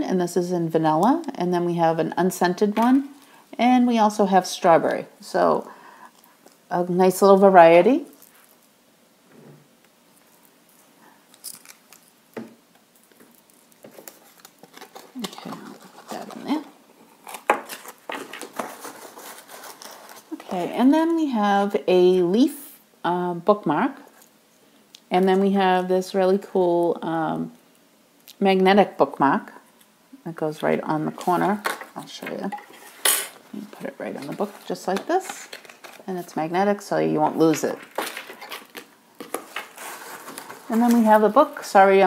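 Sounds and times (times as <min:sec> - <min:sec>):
tissue paper crinkling: 0:13.0 - 0:20.6, 0:37.8 - 0:41.7.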